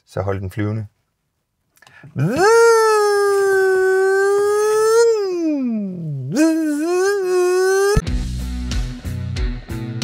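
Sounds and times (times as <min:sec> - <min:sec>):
man's drawn-out vocal howl: 0:02.2 - 0:08.0.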